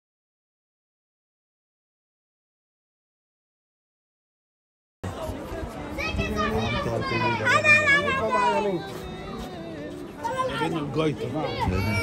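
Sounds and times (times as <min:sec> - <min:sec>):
children shouting: 0:11.4 - 0:12.0.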